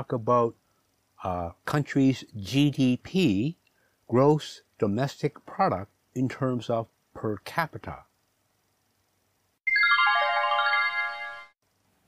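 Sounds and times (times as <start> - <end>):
descending run of ringing notes: 9.7 - 11.6.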